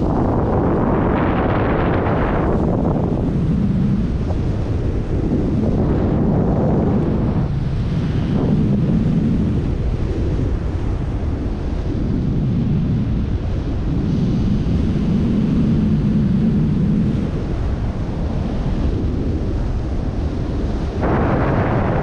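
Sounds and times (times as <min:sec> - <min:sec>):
low wind noise on microphone: 0:00.0 - 0:22.0.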